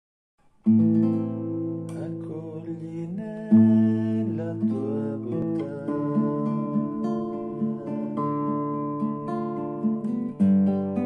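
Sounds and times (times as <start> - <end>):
classical guitar playing chords: 0.4 - 11.0.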